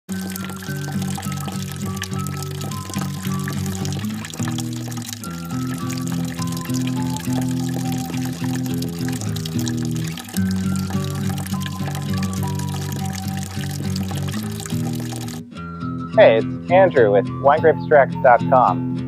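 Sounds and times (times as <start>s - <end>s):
wine trickling into bucket: 0.1s - 15.5s
background music: 0.1s - 19.0s.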